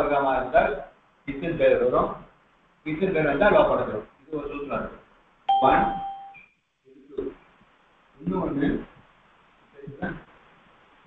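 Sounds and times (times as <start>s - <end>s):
chime: 5.5s - 6.4s.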